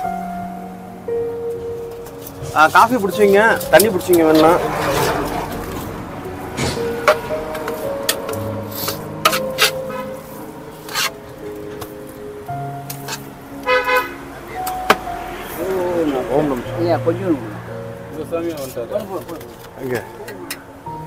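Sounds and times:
held musical notes: 0.0s - 21.0s
vehicle horn beep: 9.8s - 10.2s, 13.6s - 14.3s.

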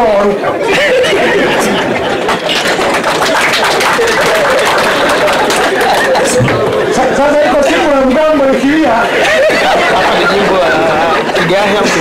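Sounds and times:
audience laughing and chattering: 0.0s - 12.0s
man laughing and talking: 0.5s - 2.3s, 5.8s - 12.0s.

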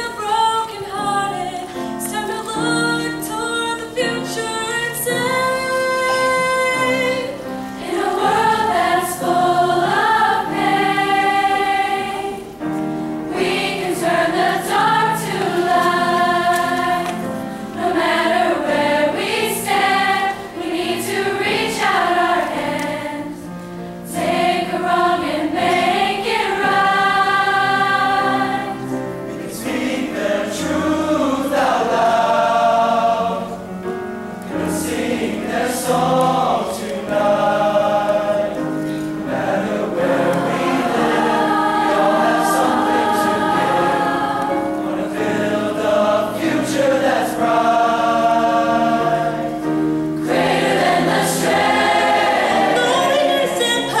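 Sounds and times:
choir singing: 0.0s - 33.8s, 34.5s - 54.0s
piano accompaniment: 0.0s - 54.0s.

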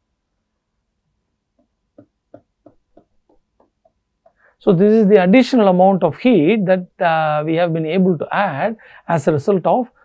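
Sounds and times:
stylus tapping on tablet: 1.6s - 4.4s.

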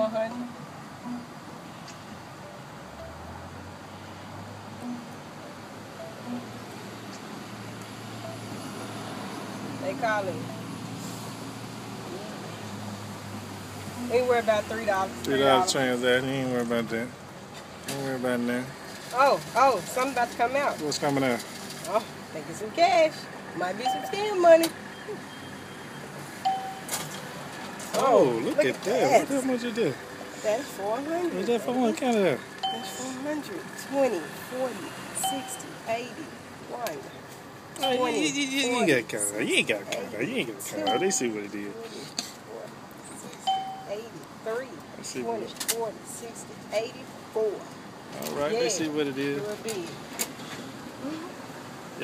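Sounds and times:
short beeps: 23.8s - 26.9s, 32.6s - 33.1s, 35.2s - 35.7s, 37.8s - 38.2s, 40.8s - 41.2s, 43.5s - 44.0s.

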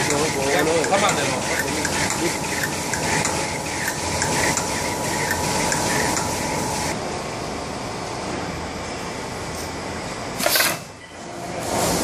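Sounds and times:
paper machine running: 0.0s - 7.0s
regular mechanical beat: 0.0s - 7.0s
steady whine: 0.0s - 7.0s.

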